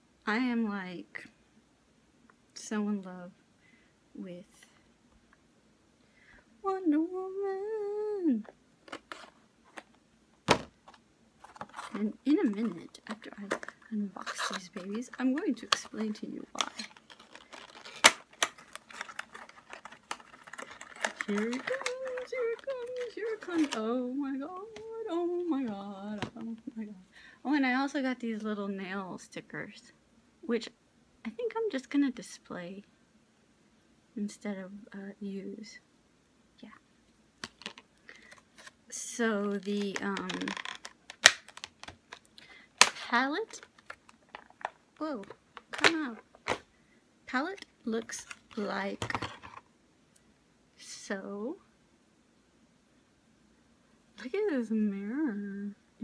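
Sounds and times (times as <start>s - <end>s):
packaging clicks and taps: 8.9s - 23.8s, 39.8s - 46.6s.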